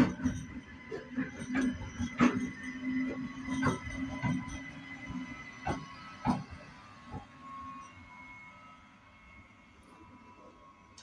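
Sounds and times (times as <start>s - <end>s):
train wheels clacking over rail joints: 0.0s - 8.0s.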